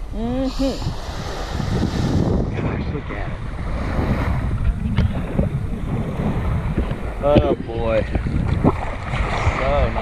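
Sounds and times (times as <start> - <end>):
wind buffeting microphone: 0.0 - 10.0
sea water washing on shore: 0.4 - 10.0.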